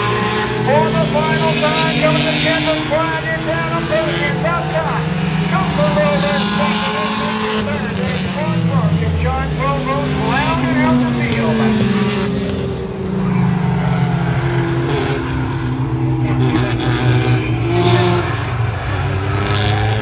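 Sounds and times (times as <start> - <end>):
race car engines passing: 0.0 - 20.0
voices: 0.0 - 20.0.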